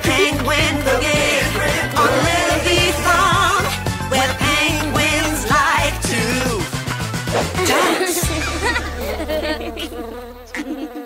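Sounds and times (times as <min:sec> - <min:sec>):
cartoon bee buzzing: 0:00.0 - 0:11.0.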